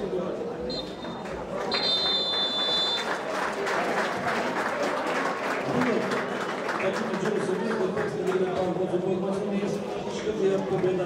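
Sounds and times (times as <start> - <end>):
voices from the stands: 0.0 - 11.0
referee's whistle blast: 0.7 - 3.1
crowd applause: 0.9 - 8.7.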